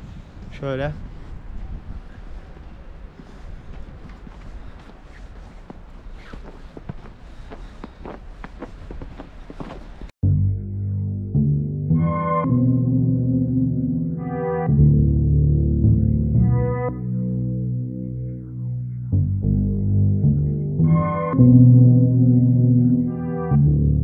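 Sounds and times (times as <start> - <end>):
wind on microphone: 0.0 - 7.2
footsteps crunching through snow: 1.6 - 10.1
synthesizer and guitar music: 10.2 - 24.0.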